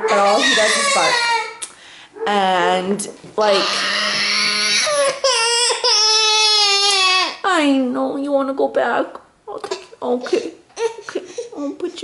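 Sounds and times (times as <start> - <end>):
baby crying: 0.0 - 1.6, 3.4 - 7.5.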